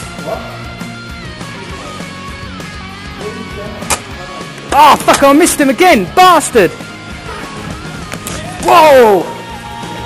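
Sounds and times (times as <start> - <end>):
background guitar music: 0.0 - 10.0.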